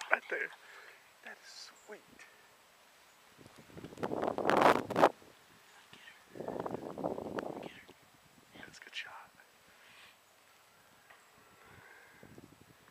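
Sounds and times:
man's breathy exhales: 11.4s - 12.3s.

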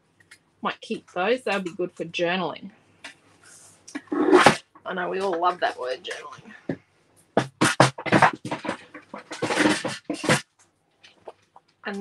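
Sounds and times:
paper rustling and scraping: 7.6s - 10.5s.

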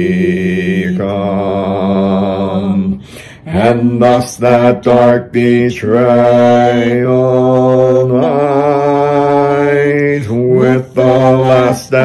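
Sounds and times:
man singing a slow hymn: 0.0s - 12.0s.

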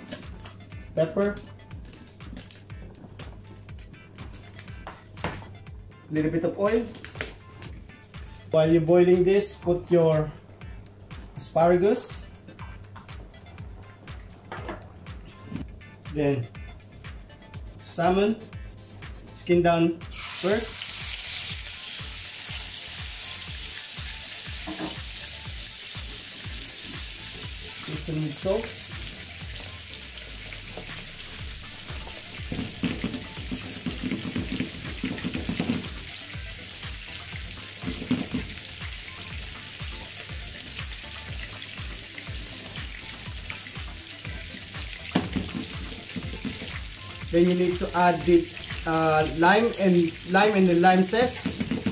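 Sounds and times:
fish sizzling in a frying pan: 20.1s - 51.9s.

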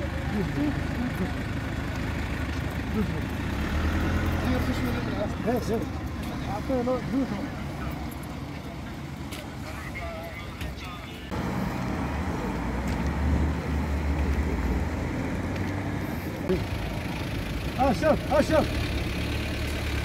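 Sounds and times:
faint voices: 0.0s - 11.4s
car engine rumbling: 0.0s - 20.0s
traffic noise: 0.0s - 20.0s.

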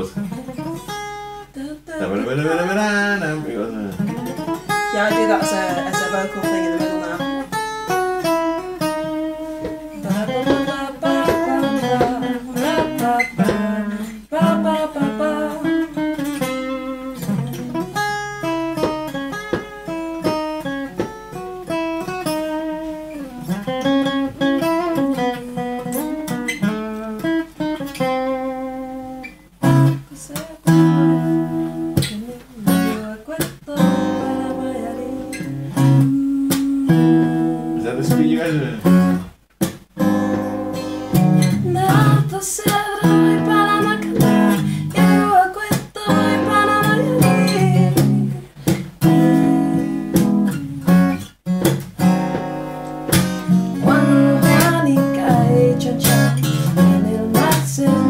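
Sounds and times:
acoustic guitar playing: 0.0s - 58.0s.

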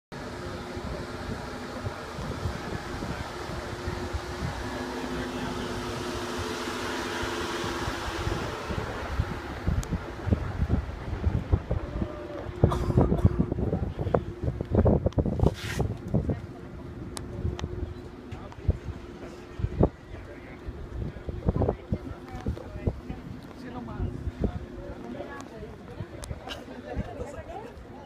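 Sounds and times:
road and engine hum: 0.1s - 28.0s
wind buffeting microphone: 0.2s - 28.0s.

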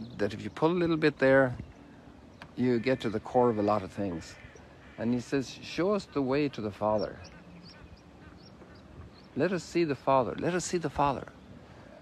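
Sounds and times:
high bird chirps: 0.0s - 10.1s.

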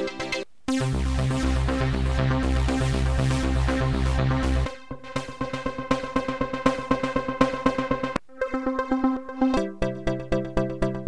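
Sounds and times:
rhythmic synthesizer pattern: 0.0s - 11.0s.

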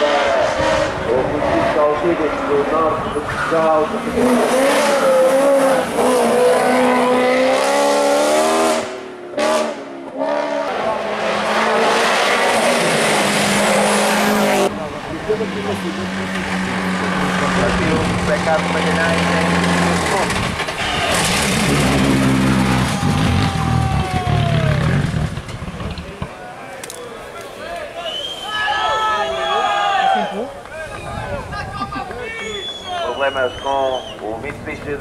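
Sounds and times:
race car engines revving: 0.0s - 26.3s.

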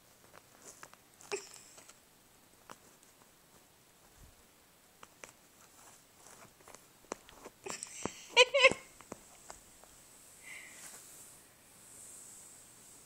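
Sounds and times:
cloth rustling: 5.0s - 11.5s.

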